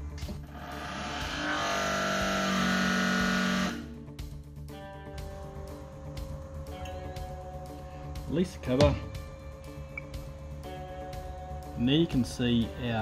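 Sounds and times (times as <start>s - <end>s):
background music: 0.0s - 13.0s
hydraulic machine pressing metal: 0.4s - 3.9s.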